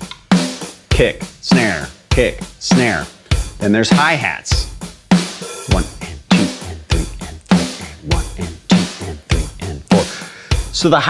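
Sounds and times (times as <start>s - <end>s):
hi-hats ticking: 0.0s - 11.0s
kick and snare drums: 0.0s - 11.0s.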